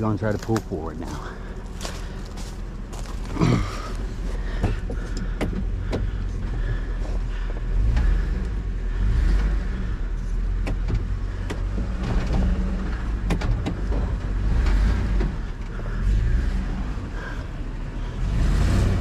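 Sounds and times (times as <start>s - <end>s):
truck engine revving under load: 3.1s - 19.0s.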